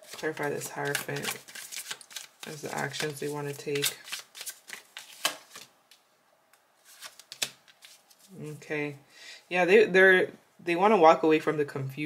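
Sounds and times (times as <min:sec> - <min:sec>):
tarot cards being shuffled: 0:00.0 - 0:06.0, 0:06.8 - 0:08.4.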